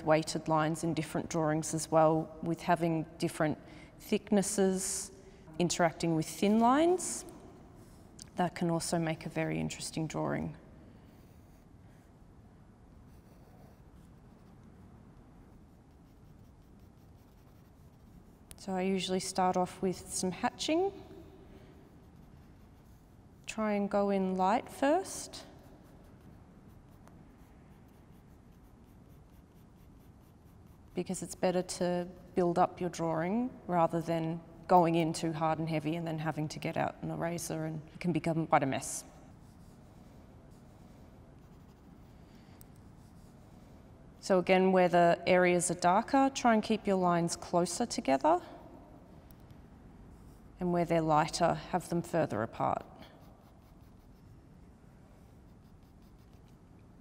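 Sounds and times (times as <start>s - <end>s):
pencil scratching on paper: 10.9s - 12.2s, 12.9s - 19.6s, 20.4s - 32.4s, 39.1s - 43.8s, 52.6s - 56.8s.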